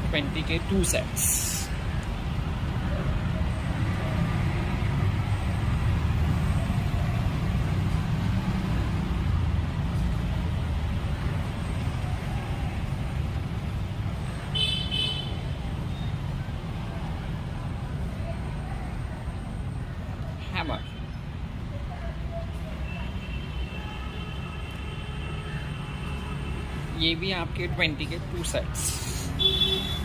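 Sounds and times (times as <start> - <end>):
road traffic rumble: 0.0 - 30.0.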